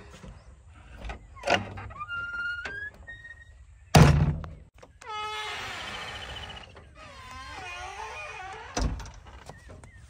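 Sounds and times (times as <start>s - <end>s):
door hinges creaking: 1.0s - 9.6s.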